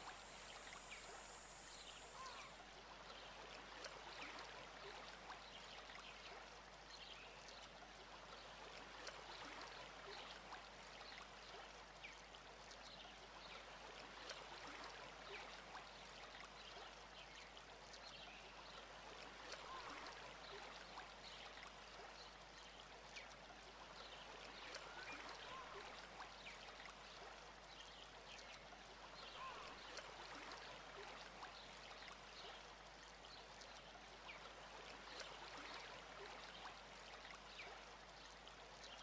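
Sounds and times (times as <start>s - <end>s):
trickling water: 0.0s - 39.0s.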